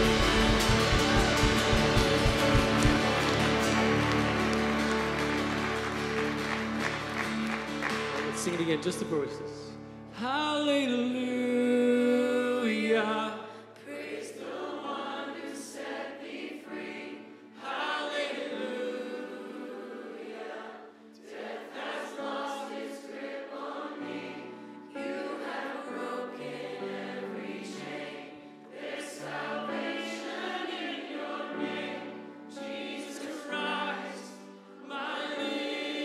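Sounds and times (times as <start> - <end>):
bass guitar: 0.0 - 8.4
congregation singing: 0.0 - 9.3, 10.8 - 36.0
acoustic guitar: 0.0 - 13.6
keyboard: 0.0 - 36.0.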